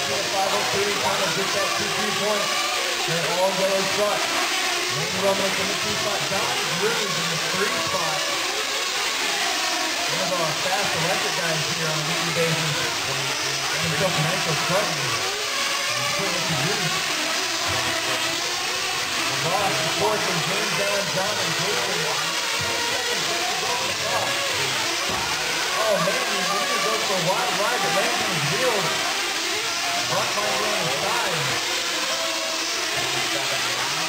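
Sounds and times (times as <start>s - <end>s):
small model engines revving: 0.0s - 34.0s
announcer's voice: 5.0s - 8.3s, 16.0s - 17.0s, 19.4s - 22.3s, 25.7s - 29.1s, 30.1s - 31.6s.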